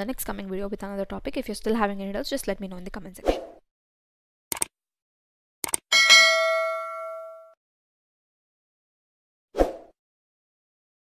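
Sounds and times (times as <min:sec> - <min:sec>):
bright bell ding: 0:05.9 - 0:07.6.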